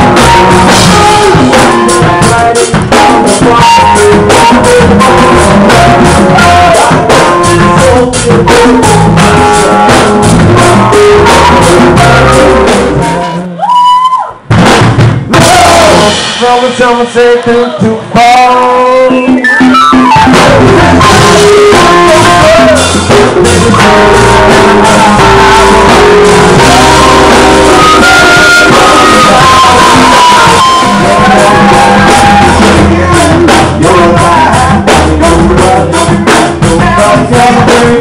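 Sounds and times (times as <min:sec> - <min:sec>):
hard drum hits: 0:00.0 - 0:13.0, 0:14.5 - 0:17.3, 0:19.6 - 0:38.0
keyboard: 0:00.0 - 0:13.6, 0:18.0 - 0:38.0
bass line: 0:00.0 - 0:38.0
electric guitar: 0:00.0 - 0:38.0
live band with hand drums: 0:00.0 - 0:38.0.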